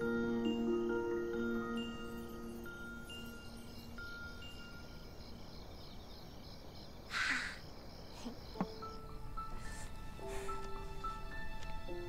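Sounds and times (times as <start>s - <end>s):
soft chime-like music: 0.0s - 6.0s, 8.5s - 12.0s.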